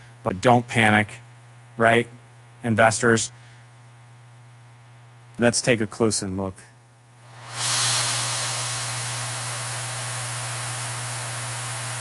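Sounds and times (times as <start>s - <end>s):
steady static hiss: 0.0s - 12.0s.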